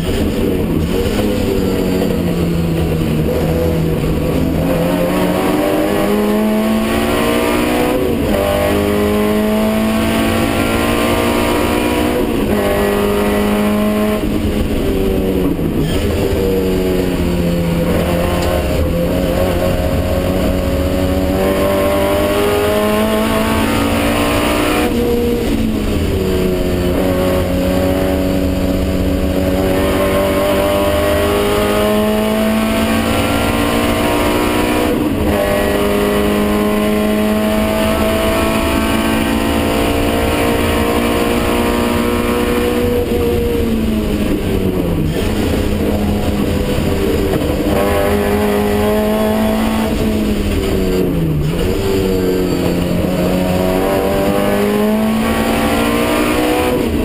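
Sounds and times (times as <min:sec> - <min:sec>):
racing car engine revving: 0:00.0 - 0:57.0.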